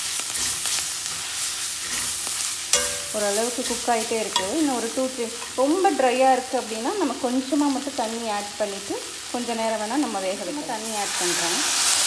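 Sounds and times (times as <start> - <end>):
leaves sizzling in a frying pan: 0.0 - 12.0
spatula clicking against pan: 2.8 - 5.7.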